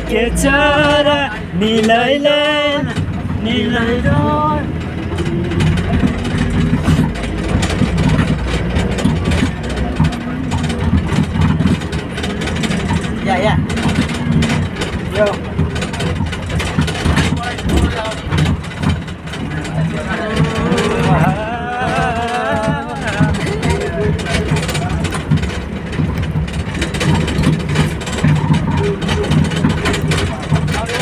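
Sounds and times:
bus engine and road rumble: 0.0 - 31.0
rattles and knocks of bus body: 0.0 - 31.0.

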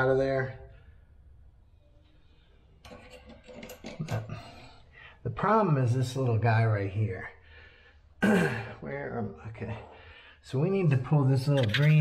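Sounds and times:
hand tools clicking and clinking: 2.9 - 4.3.

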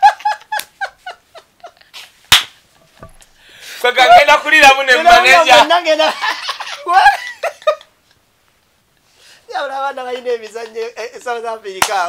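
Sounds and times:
sharp smack: 2.3 - 2.6
high-pitched laughter: 6.0 - 7.9.

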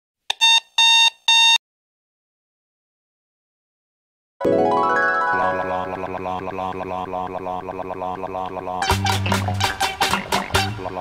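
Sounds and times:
alarm clock beeping: 0.3 - 1.6.

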